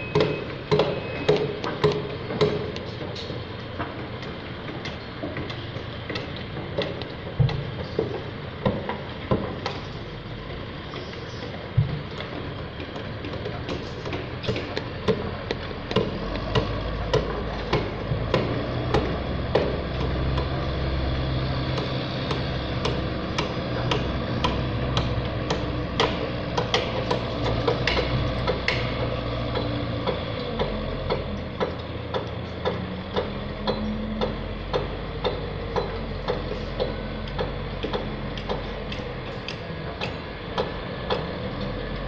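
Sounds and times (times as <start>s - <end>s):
diesel engine running: 0.0s - 42.0s.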